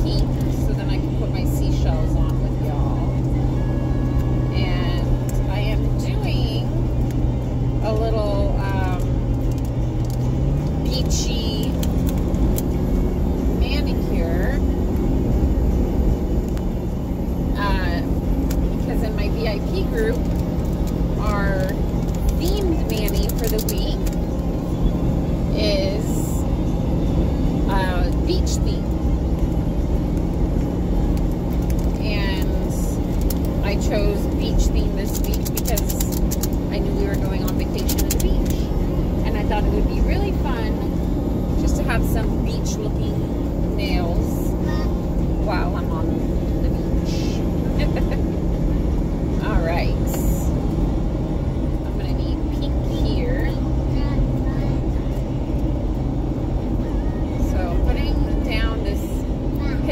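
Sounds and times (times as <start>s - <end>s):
road noise: 0.0s - 59.9s
vehicle engine hum: 0.0s - 59.9s.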